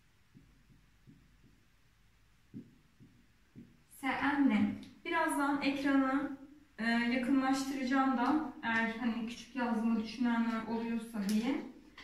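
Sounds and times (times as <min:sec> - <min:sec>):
marker knocking on whiteboard: 0:00.3 - 0:01.8, 0:02.4 - 0:03.8.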